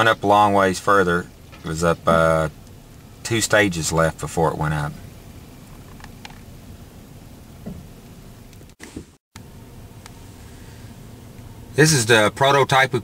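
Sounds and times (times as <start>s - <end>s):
dump truck engine rumbling: 0.0s - 8.6s.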